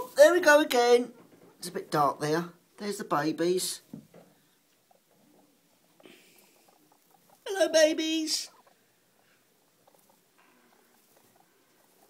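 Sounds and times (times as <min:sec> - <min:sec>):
guinea pigs rustling in hay: 0:00.0 - 0:12.0.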